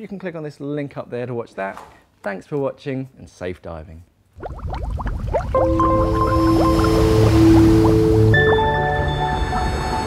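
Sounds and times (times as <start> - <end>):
rising bubbling sound effects: 4.4 - 10.0
sustained music chords: 5.5 - 10.0.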